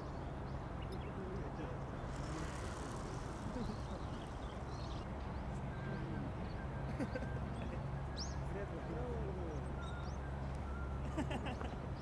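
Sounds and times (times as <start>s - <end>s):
background rumble and hiss: 1.1s - 7.1s
faint voices: 1.2s - 6.5s.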